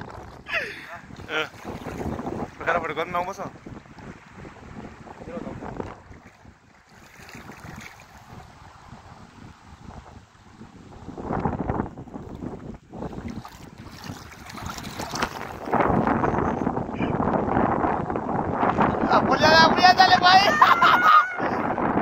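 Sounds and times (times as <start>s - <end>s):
wind buffeting microphone: 0.0s - 22.0s
feet wading through shallow water: 0.9s - 8.8s, 12.2s - 16.0s.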